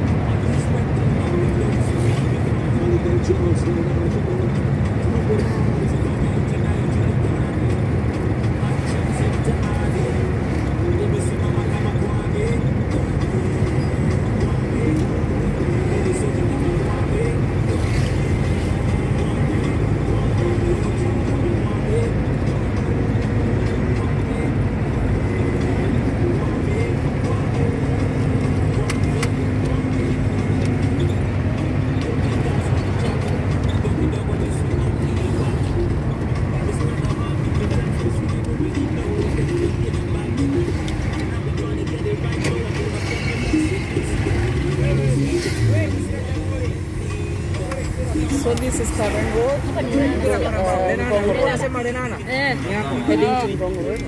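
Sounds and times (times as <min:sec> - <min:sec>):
people talking: 0:00.0 - 0:07.8, 0:08.4 - 0:54.0
car interior road rumble: 0:00.0 - 0:54.0.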